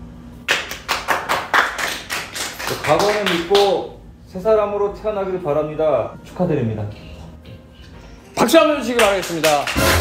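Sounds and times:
hands clapping quickly: 0.4s - 3.8s, 8.9s - 10.0s.

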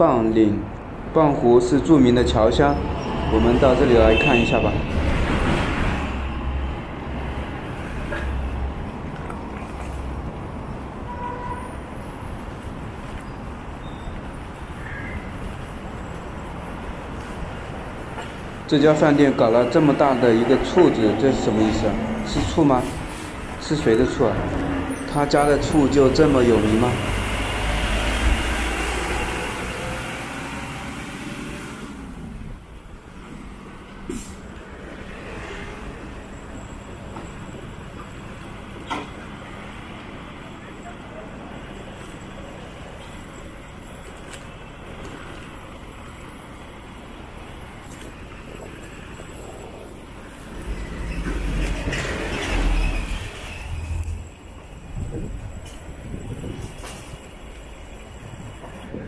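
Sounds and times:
background traffic hum: 0.0s - 59.0s
vehicle passing: 1.5s - 10.9s, 16.6s - 32.7s, 33.3s - 36.8s, 47.5s - 57.1s.

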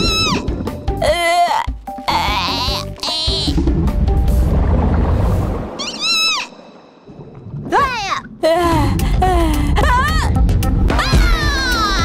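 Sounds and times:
rushing water rumble: 3.1s - 10.9s.

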